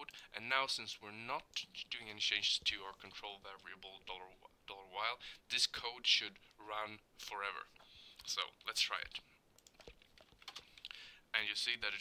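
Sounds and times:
faint keyboard keystrokes: 9.6s - 10.9s.

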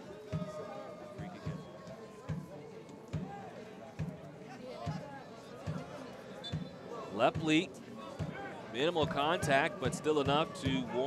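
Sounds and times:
distant crowd voices and shouts: 0.0s - 11.0s
drum beaten steadily: 7.2s - 11.0s.

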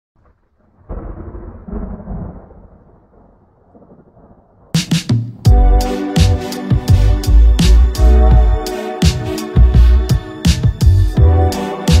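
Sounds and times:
thunder-like low rumble: 0.2s - 4.8s.

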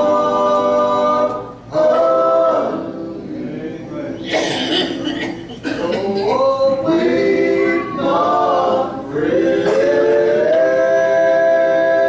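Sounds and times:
male vocal trio singing gospel: 0.0s - 5.0s, 5.6s - 12.0s.

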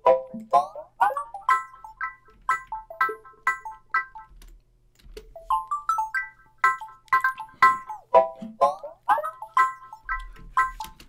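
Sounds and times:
plucked synth loop: 0.0s - 4.4s, 5.4s - 11.0s.

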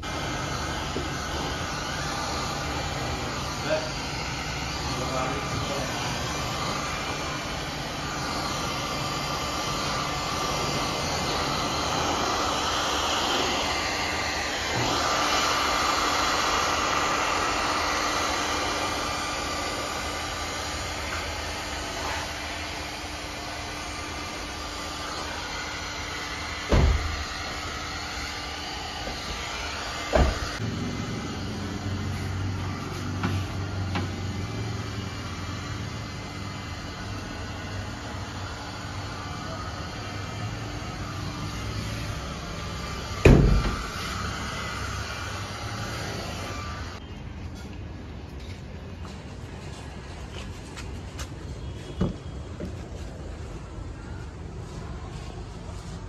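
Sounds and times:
heat gun blowing: 0.0s - 47.0s.

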